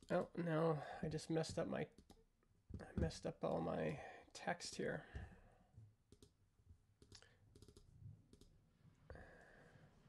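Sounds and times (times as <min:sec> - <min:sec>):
keyboard and mouse clicks: 0:01.4 - 0:02.9, 0:06.1 - 0:06.4, 0:07.0 - 0:08.5.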